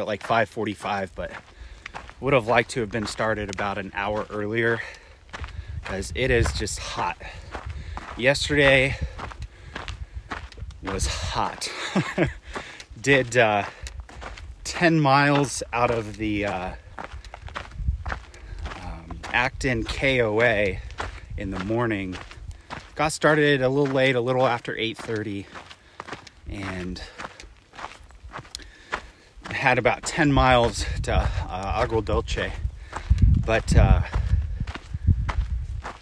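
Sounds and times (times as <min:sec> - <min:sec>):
footsteps on dirt trail: 0:00.0 - 0:36.0
low microphone rumble: 0:30.5 - 0:36.0.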